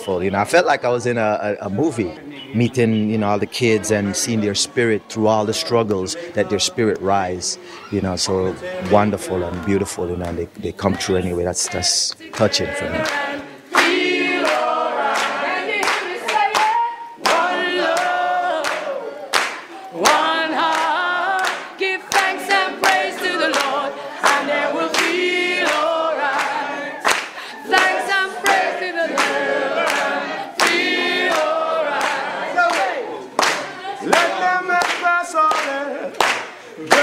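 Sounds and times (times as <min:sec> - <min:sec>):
group of voices singing: 0:01.1 - 0:37.0
hand clapping: 0:12.1 - 0:37.0.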